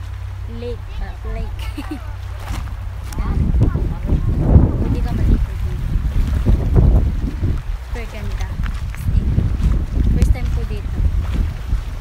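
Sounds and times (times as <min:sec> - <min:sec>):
waves lapping on pebbly shore: 0:00.0 - 0:12.0
wind buffeting microphone: 0:00.0 - 0:12.0.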